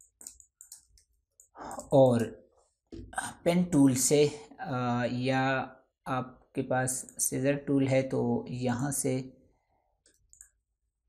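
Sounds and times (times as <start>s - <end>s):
computer mouse clicks: 0.0s - 2.3s, 10.0s - 10.7s.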